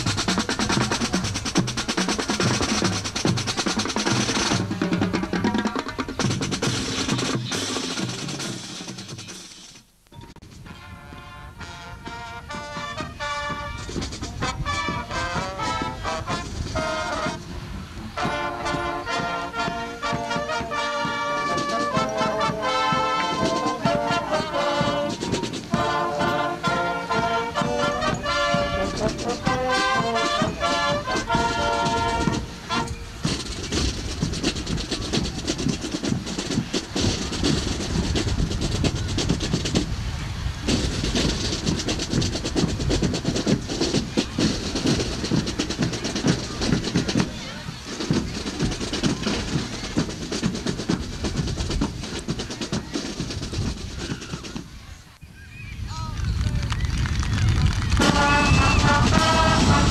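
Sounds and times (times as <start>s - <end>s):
brass band playing: 0.0s - 9.8s, 10.4s - 39.5s, 58.0s - 59.9s
crowd applause: 56.3s - 59.9s.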